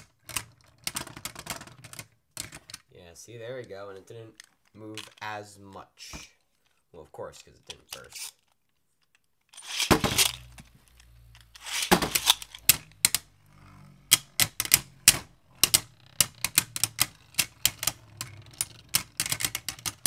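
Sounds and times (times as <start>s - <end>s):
spinning tops clacking: 9.6s - 10.5s, 11.6s - 13.2s
brief rasp: 11.6s - 11.9s.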